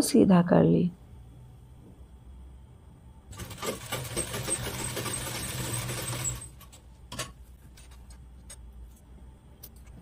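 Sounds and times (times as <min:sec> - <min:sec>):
sewing machine running: 0:03.3 - 0:06.7.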